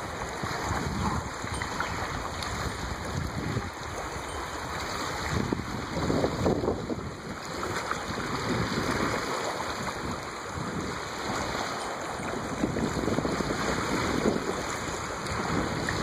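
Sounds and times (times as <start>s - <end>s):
small waves lapping: 0.0s - 16.0s
wind buffeting microphone: 0.0s - 16.0s.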